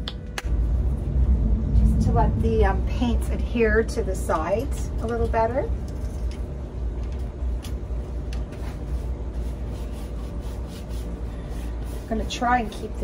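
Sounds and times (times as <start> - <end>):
low rumble: 0.0 - 9.5.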